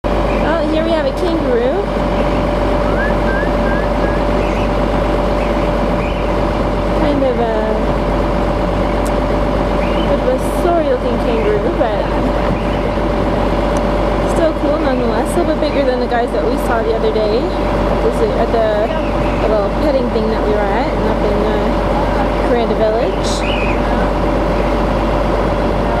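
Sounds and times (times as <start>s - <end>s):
mechanical drone: 0.1s - 26.0s
faint short rising calls: 2.8s - 4.8s.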